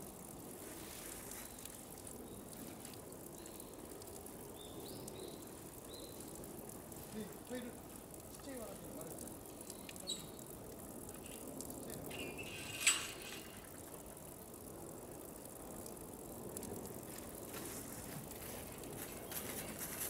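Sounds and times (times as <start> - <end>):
water trickling into pool: 0.0 - 20.0.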